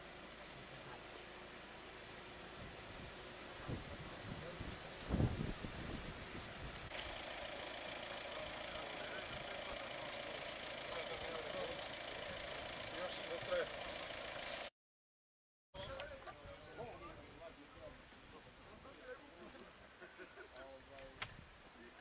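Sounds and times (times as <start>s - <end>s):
wind buffeting microphone: 2.6s - 6.9s
car engines idling: 6.9s - 14.7s
faint voices: 7.8s - 13.8s.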